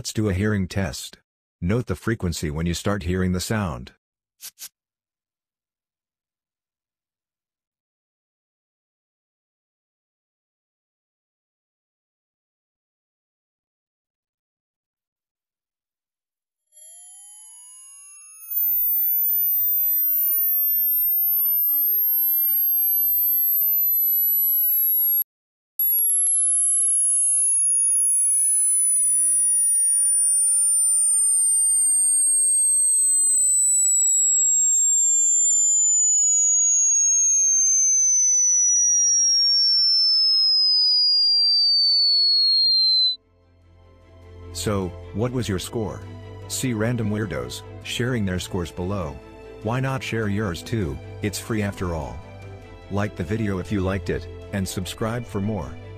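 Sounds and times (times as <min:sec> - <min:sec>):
descending sine tone: 0:16.8 - 0:25.2, 0:25.8 - 0:43.2.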